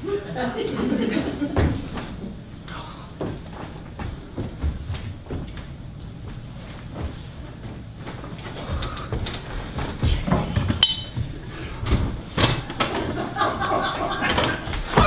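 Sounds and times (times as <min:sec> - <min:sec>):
footfalls: 0:01.5 - 0:15.0
prop clinking: 0:10.7 - 0:11.2.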